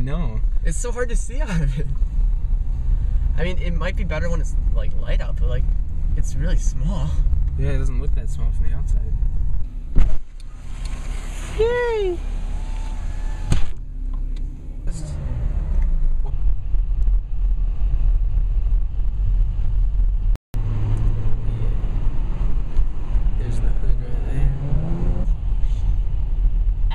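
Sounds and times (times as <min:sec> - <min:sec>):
car engine and road rumble: 0:00.0 - 0:26.9.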